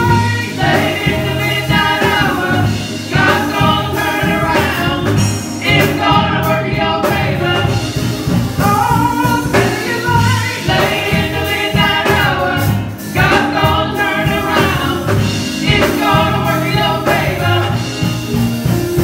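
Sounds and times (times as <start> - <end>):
women singing gospel: 0.0 - 18.4.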